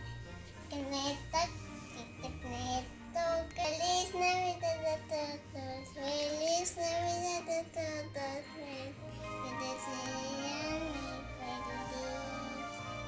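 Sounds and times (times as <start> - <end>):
music: 0.0 - 13.0
child singing: 0.6 - 13.0.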